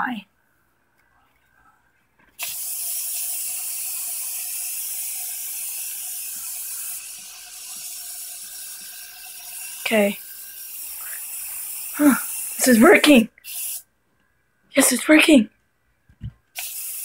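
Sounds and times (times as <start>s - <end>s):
aerosol can spraying: 2.4s - 13.9s, 16.6s - 17.0s.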